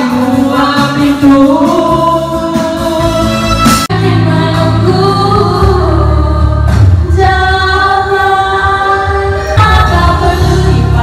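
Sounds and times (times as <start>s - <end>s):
woman singing into a microphone: 0.0s - 11.0s.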